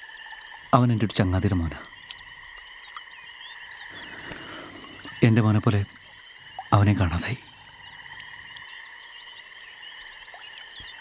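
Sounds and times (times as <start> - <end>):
animal chorus ringing: 0.0 - 11.0.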